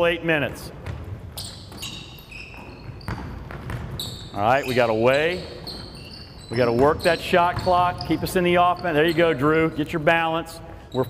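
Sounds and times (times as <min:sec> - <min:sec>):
basketball bouncing on wooden floor: 0:00.7 - 0:08.9
sneaker squeaks: 0:00.7 - 0:10.0.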